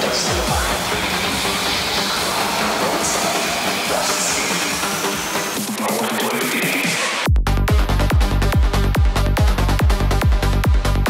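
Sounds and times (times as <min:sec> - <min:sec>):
loud distorted electronic dance music: 0:00.0 - 0:11.0.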